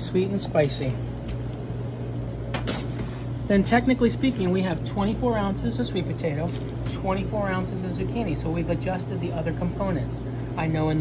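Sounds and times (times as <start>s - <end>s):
kitchen equipment hum: 0.0s - 11.0s.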